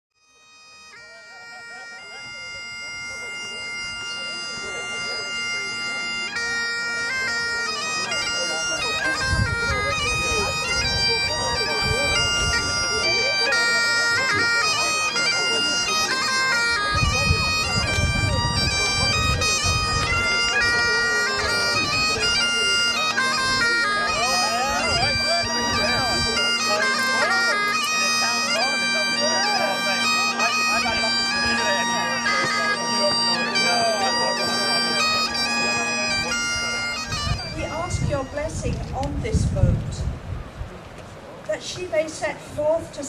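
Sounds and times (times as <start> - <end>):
bagpipes playing a tune: 0.2 - 40.4.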